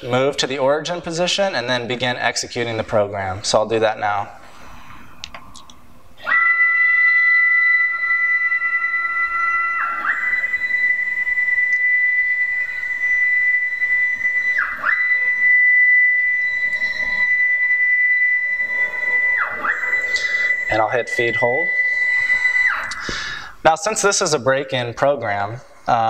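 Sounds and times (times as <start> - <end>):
stepper motors whining: 6.1 - 23.5.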